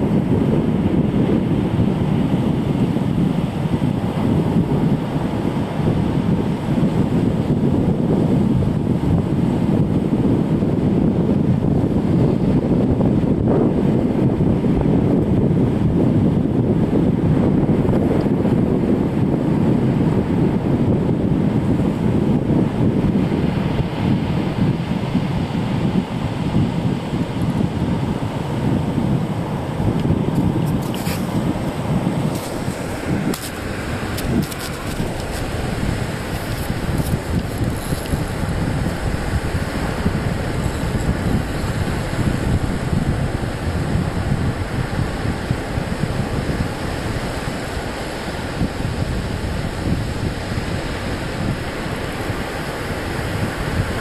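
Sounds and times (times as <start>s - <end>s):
wind buffeting microphone: 0.0s - 54.0s
surf breaking: 30.2s - 42.4s.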